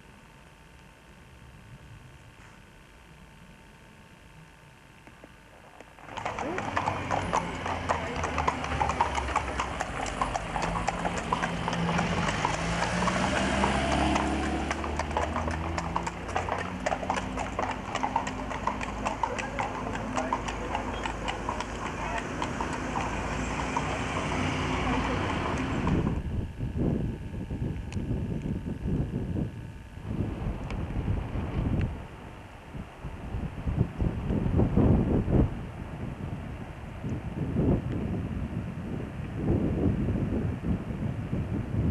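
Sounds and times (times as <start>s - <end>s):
low steady rumble: 0.0s - 41.9s
horse hooves on paved road: 5.6s - 26.3s.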